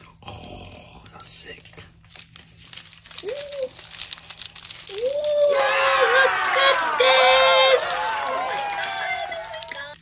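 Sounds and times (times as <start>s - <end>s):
plastic wrapping crinkling: 1.0s - 10.0s.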